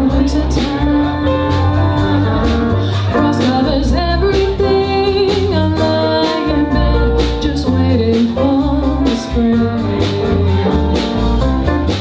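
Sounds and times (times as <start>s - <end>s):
woman singing: 0.0s - 11.2s
jazz-funk band playing: 0.0s - 12.0s.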